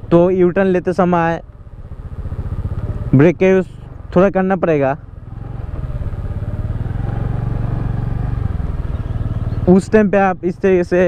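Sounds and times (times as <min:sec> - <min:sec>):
scooter engine running: 0:01.5 - 0:03.3, 0:05.0 - 0:09.9.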